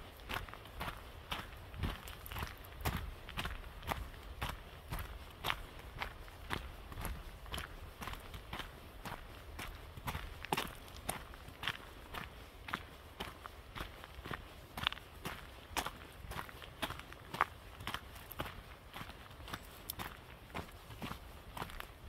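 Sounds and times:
footsteps on forest trail: 0:00.0 - 0:22.0.

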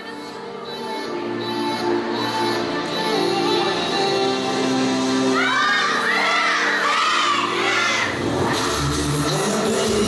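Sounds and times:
pop dance track: 0:01.4 - 0:10.0
audience shrieking and cheering: 0:05.3 - 0:08.3.

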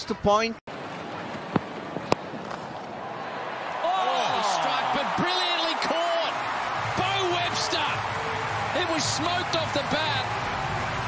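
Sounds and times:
sports ground ambience: 0:00.0 - 0:11.0.

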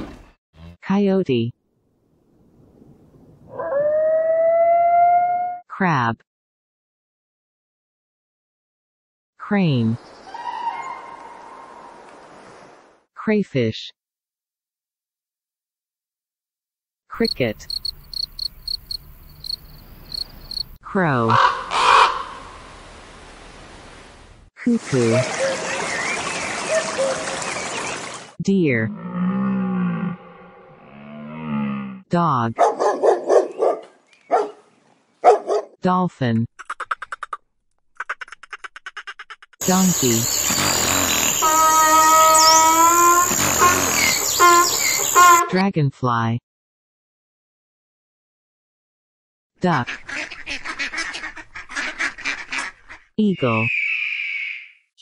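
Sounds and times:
cricket chirping: 0:17.2 - 0:20.8, 0:39.6 - 0:42.6, 0:43.2 - 0:45.4
donkey braying: 0:40.1 - 0:45.4.

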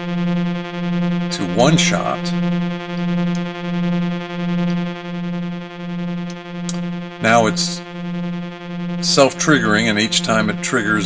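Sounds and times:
synthesizer low steady note: 0:00.0 - 0:11.0.

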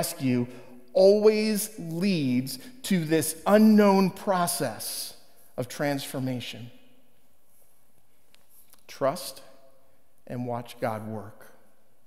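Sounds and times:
man speaking: 0:00.0 - 0:06.8, 0:08.7 - 0:09.6, 0:10.2 - 0:11.6
faint room hiss: 0:00.0 - 0:12.0.

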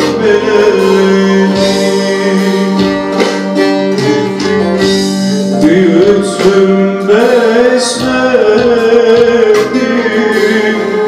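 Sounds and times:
man singing through microphone: 0:00.0 - 0:03.2, 0:05.4 - 0:11.0
plucked string instrument: 0:00.0 - 0:07.2.

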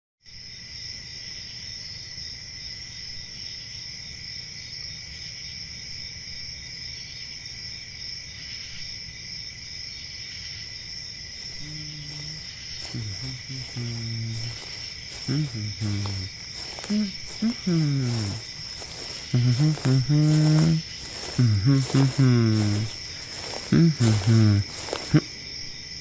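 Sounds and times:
crickets chirring: 0:00.3 - 0:26.0.

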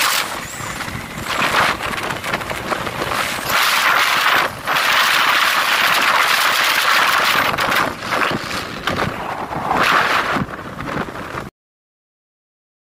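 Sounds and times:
wind rushing over microphone: 0:00.0 - 0:11.5.

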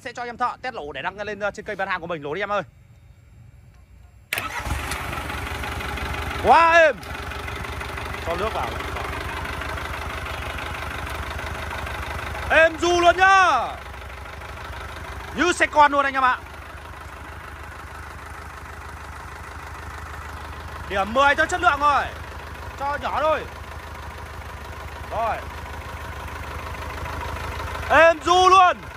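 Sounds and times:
diesel engine starting and running: 0:00.0 - 0:28.9.

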